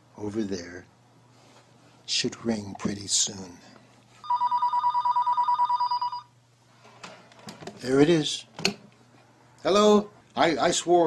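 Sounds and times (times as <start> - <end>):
electronic telephone ring: 4.2 - 6.3.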